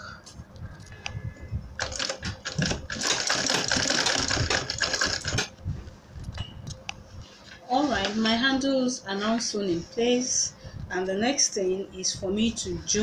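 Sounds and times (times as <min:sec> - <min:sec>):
sewing machine stitching: 0:01.8 - 0:05.5.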